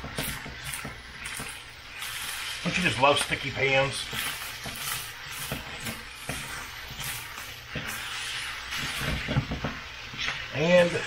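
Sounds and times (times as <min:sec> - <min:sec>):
rice sizzling in a skillet: 0:00.0 - 0:11.0
utensil scraping pan: 0:00.0 - 0:11.0.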